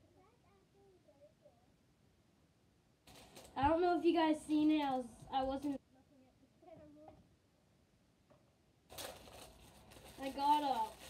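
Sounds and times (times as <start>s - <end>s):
packaging crinkling and tearing: 3.1s - 3.6s, 8.9s - 11.0s.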